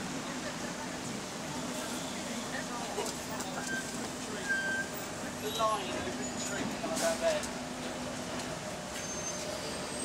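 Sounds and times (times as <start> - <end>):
traffic hiss on wet road: 0.0 - 10.0.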